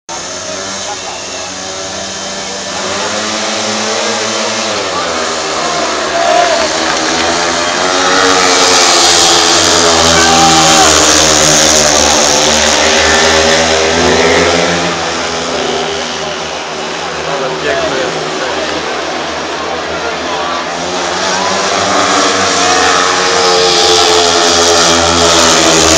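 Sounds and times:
motorcycle engines revving: 0.1s - 25.9s.

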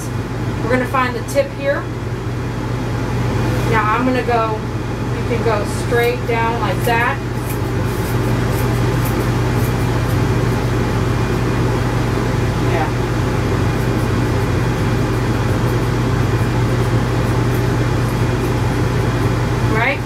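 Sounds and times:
machine drone with hum and hiss: 0.0s - 20.0s.

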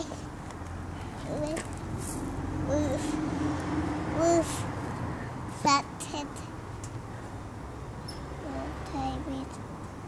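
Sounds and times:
low rumble of traffic: 0.0s - 10.0s
child's drawn-out wordless voice: 1.2s - 1.7s, 2.5s - 6.6s, 8.4s - 9.6s.

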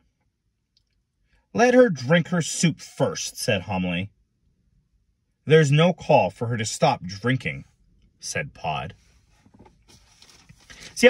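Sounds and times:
faint hiss in vehicle cabin: 8.6s - 11.0s.

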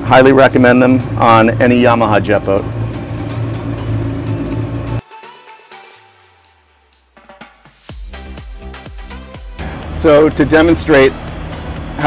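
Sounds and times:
boat engines humming: 0.0s - 5.0s, 8.2s - 12.0s.

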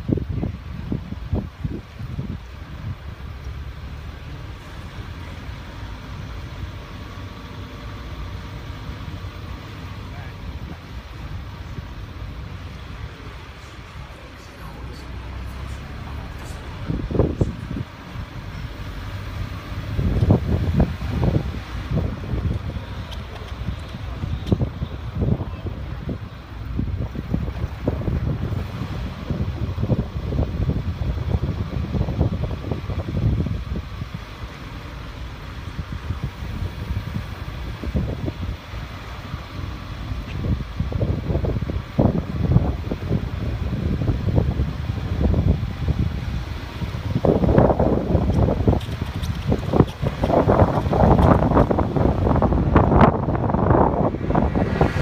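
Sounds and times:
car running and road noise: 0.0s - 55.0s
wind buffeting microphone: 0.0s - 55.0s.

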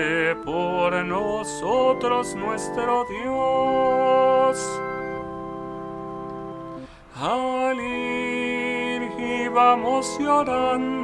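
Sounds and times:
person singing: 0.0s - 5.3s, 6.8s - 11.0s
digital keyboard chord: 0.0s - 7.0s.

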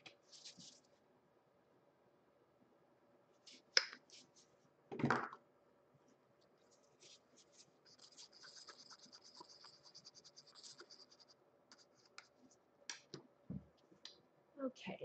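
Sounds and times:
gloved hands scratching and crackling: 0.2s - 0.9s, 6.4s - 13.0s.

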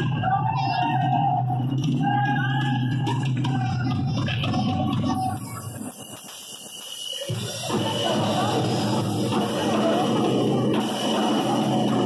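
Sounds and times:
live band through loud pa: 0.0s - 12.0s.

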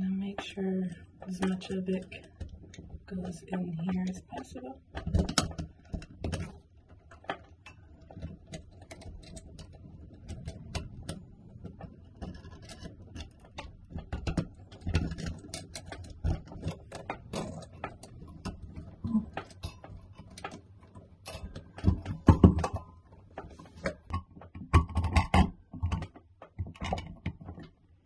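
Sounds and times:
small clicks rattles and taps: 0.0s - 28.0s.

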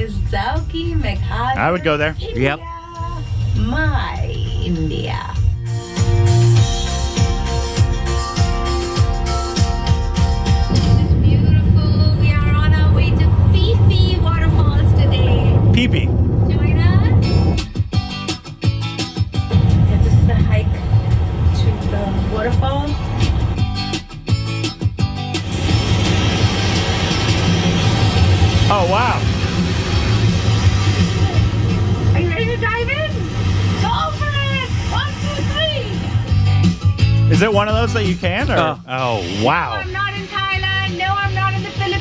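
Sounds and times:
woman speaking: 0.0s - 5.4s, 10.9s - 15.7s, 16.5s - 17.3s, 19.5s - 20.8s, 21.6s - 23.0s, 32.2s - 36.0s, 38.3s - 38.8s, 39.5s - 42.0s
steady low rumble: 0.0s - 5.7s, 10.7s - 17.8s, 19.5s - 23.7s, 25.5s - 36.3s
car driving rumble: 10.6s - 17.6s, 19.5s - 23.7s.

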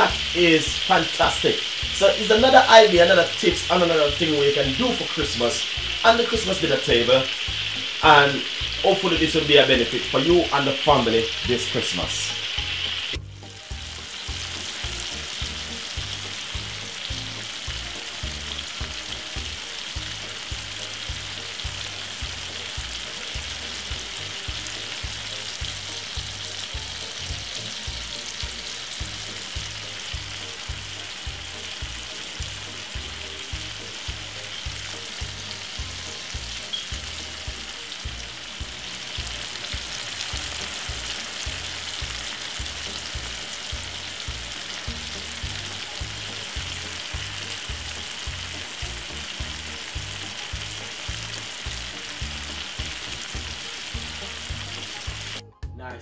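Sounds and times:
chicken sizzling in oil: 0.0s - 55.5s.

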